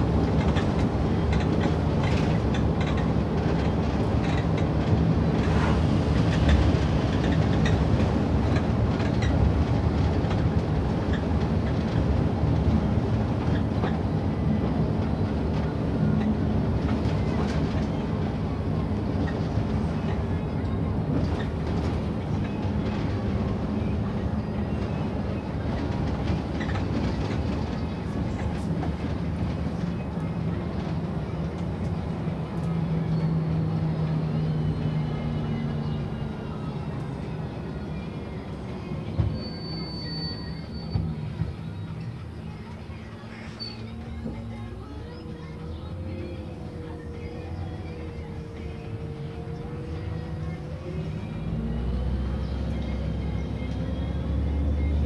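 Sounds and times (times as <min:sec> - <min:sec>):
bus engine and road rumble: 0:00.0 - 0:55.0.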